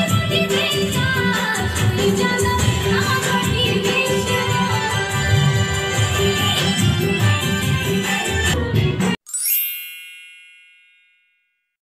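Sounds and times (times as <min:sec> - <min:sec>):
folk dance music: 0:00.0 - 0:09.2
bright rising chime: 0:09.3 - 0:11.4.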